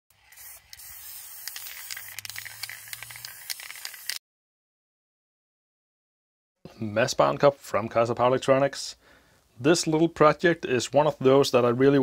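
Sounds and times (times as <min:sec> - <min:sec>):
spray paint can spraying: 0:00.1 - 0:04.2.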